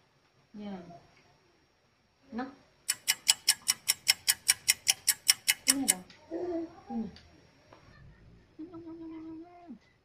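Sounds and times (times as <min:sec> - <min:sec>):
rapid sharp ticking: 0:02.9 - 0:06.0.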